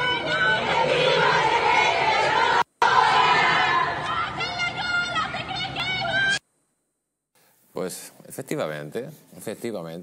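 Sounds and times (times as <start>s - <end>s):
young women shouting and chanting: 0.0s - 6.4s
man talking: 7.7s - 10.0s.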